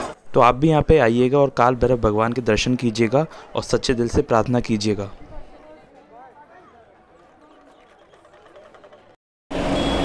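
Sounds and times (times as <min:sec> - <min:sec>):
faint crowd voices: 0:00.0 - 0:09.2
loud street noise: 0:00.0 - 0:10.0.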